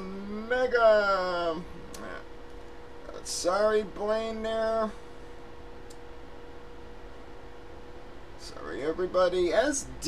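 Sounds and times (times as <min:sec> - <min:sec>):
faint steady hum: 0:00.0 - 0:10.0
low background hiss: 0:00.0 - 0:10.0.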